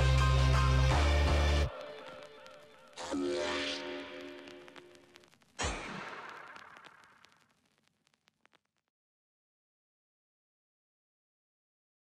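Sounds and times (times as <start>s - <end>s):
music with heavy bass: 0.0s - 1.7s.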